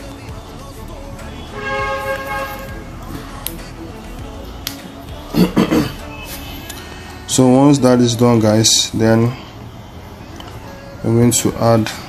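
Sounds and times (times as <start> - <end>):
held horn-like tone: 1.4 - 2.9.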